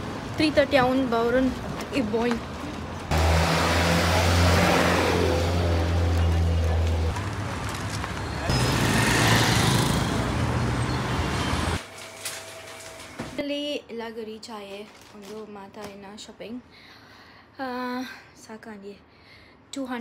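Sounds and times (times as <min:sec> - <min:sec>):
road noise: 0:00.0 - 0:13.2.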